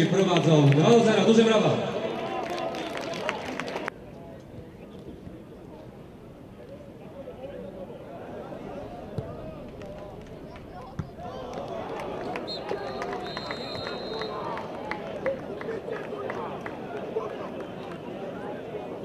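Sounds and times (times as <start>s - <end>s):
stadium crowd: 0.0s - 19.0s
players shouting: 8.2s - 15.4s
sharp claps: 9.7s - 16.8s.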